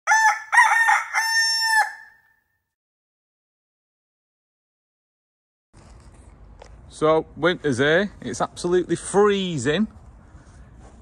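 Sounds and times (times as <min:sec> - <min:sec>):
rooster crowing: 0:00.1 - 0:02.4.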